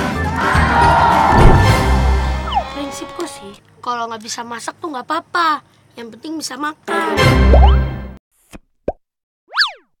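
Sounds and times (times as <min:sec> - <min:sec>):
background music: 0:00.0 - 0:03.6.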